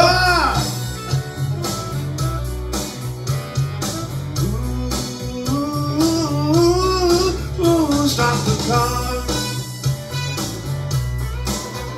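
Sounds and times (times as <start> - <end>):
man singing: 0.0 - 0.8, 4.4 - 9.7
country-rock backing track: 0.0 - 11.9.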